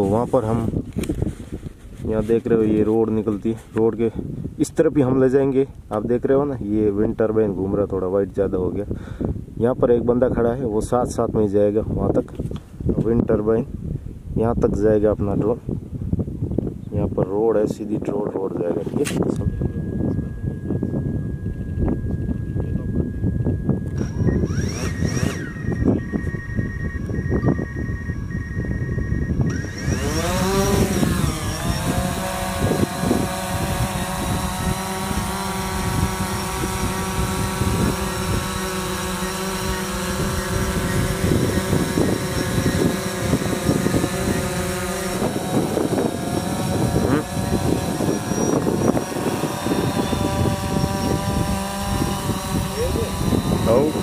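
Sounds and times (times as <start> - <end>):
drone propellers whining and buzzing: 19.0 - 54.0.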